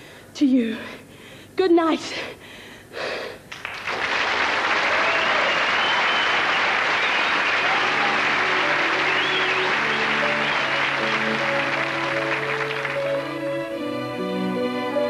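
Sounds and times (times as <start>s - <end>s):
studio audience applauding: 3.5s - 13.4s
closing music with held notes: 7.6s - 15.0s.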